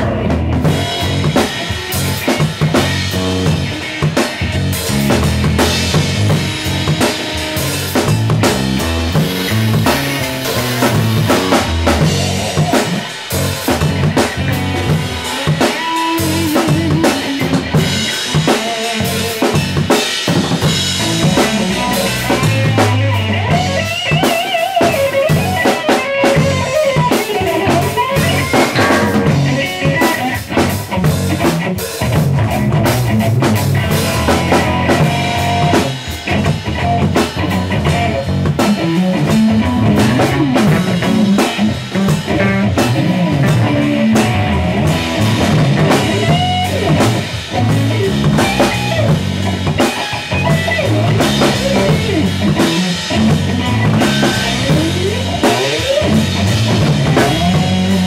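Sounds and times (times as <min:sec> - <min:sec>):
band playing live: 0:00.0 - 0:58.0
busy drum beat: 0:00.0 - 0:58.0.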